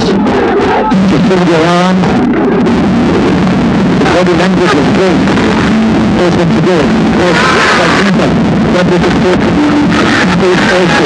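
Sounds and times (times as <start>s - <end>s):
commentator talking: 0.0s - 2.2s, 4.0s - 11.0s
stadium crowd noise: 0.0s - 11.0s
steady low hum: 0.0s - 11.0s.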